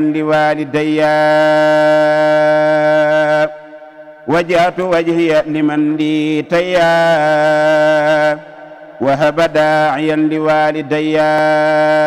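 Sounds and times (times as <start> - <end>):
man chanting a long note: 0.0 - 12.0.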